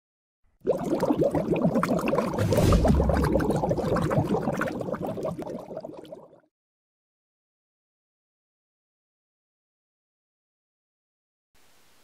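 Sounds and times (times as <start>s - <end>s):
water bubbling: 0.6s - 6.4s
deep rushing water surge: 2.3s - 4.9s.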